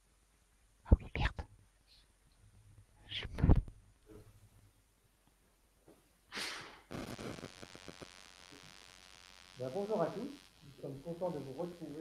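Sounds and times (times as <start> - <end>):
clicks and knocks near microphone: 3.3 - 4.3.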